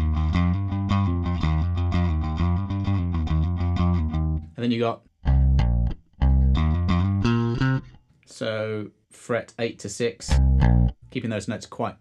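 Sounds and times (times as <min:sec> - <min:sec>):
electric bass picked notes: 0:00.0 - 0:04.6, 0:05.2 - 0:08.0, 0:10.3 - 0:11.1.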